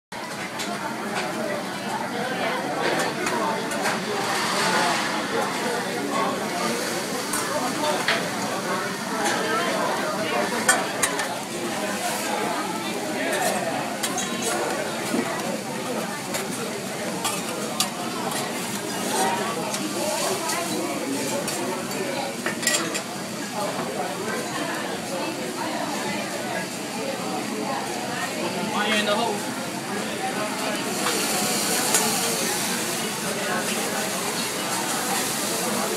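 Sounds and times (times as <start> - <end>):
diners chattering: 0.1 - 35.9
vegetables frying on griddle: 3.6 - 22.6, 27.8 - 35.9
food sizzling on hot plate: 30.6 - 35.9.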